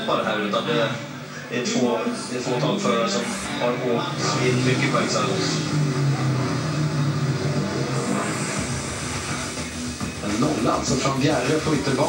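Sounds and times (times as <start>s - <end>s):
deep rough engine rumble: 3.7s - 10.2s
motorcycle engines running: 3.9s - 10.2s.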